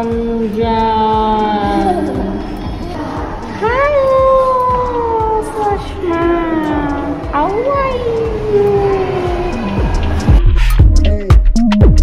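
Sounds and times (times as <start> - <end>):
high voice singing wordless notes: 0.0 - 9.9.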